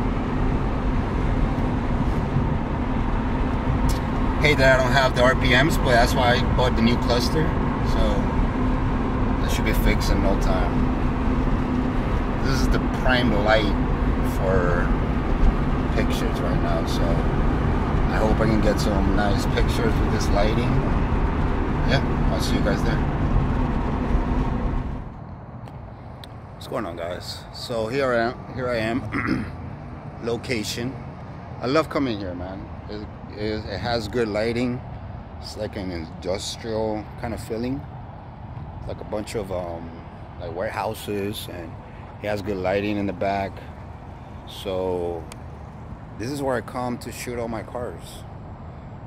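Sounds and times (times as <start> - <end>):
car cabin engine and road noise: 0.0 - 49.0.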